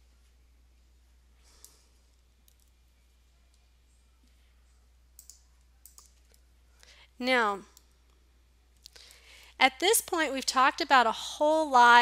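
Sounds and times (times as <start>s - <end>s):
low steady hum: 0.0s - 12.0s
computer mouse clicks: 5.2s - 6.4s.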